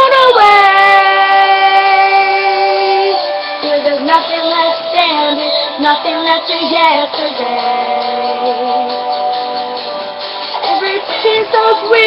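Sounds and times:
person singing: 0:00.0 - 0:09.9, 0:10.6 - 0:12.0.

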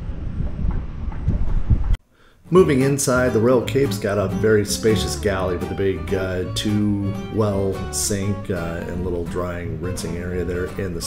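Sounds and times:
wind buffeting microphone: 0:00.0 - 0:02.0.

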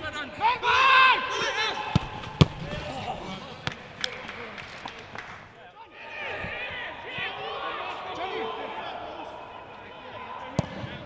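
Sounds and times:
player shouting: 0:00.3 - 0:03.2
football being kicked: 0:01.9 - 0:02.7.

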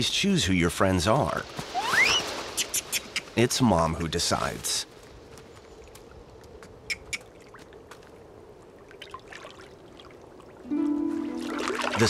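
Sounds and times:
water trickling: 0:07.3 - 0:12.0.

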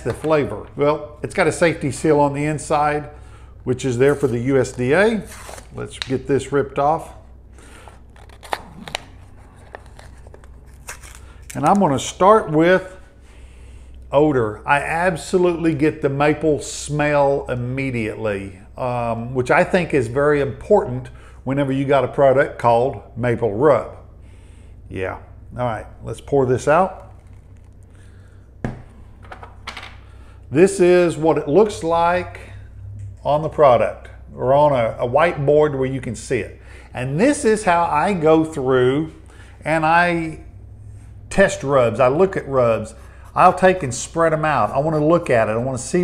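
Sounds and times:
steady low hum: 0:00.0 - 0:46.0
spice rub rustling: 0:07.8 - 0:11.6, 0:27.0 - 0:28.1.

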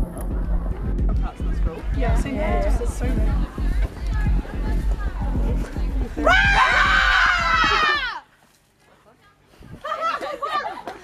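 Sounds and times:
background music with beat: 0:00.0 - 0:08.0
girls screaming: 0:06.2 - 0:08.2.

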